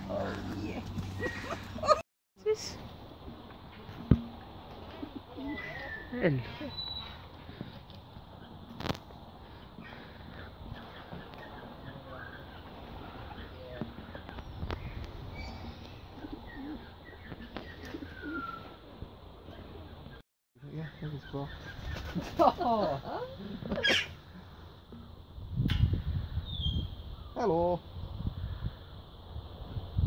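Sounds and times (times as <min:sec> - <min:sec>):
low wavering bird calls: 0:04.8 - 0:07.6, 0:09.4 - 0:19.0
bird cooing: 0:15.3 - 0:18.8.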